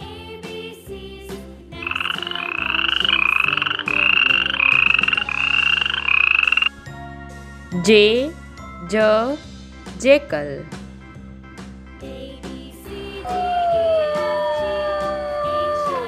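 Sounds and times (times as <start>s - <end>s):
pulsed trilling animal call: 1.8s - 6.7s.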